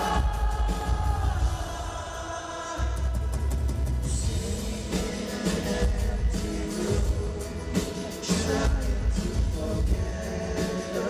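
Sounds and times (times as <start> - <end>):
live rock band playing: 0.0 - 1.8, 2.8 - 11.0.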